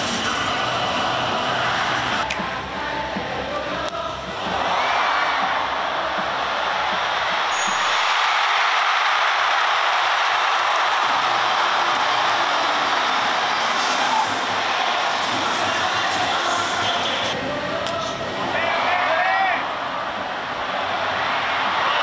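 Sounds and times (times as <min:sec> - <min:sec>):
stadium crowd cheering: 0:00.0 - 0:02.3, 0:03.8 - 0:22.0.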